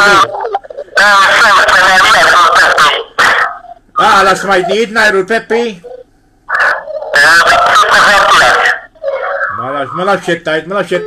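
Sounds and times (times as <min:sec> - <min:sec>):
man crying out: 0:00.0 - 0:00.4.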